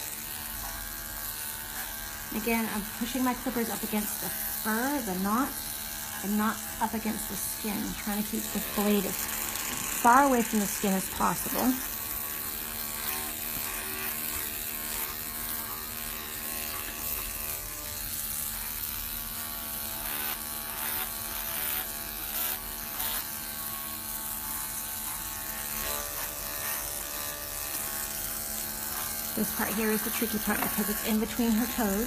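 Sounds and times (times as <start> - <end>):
electric clippers buzzing: 0.0 - 32.0.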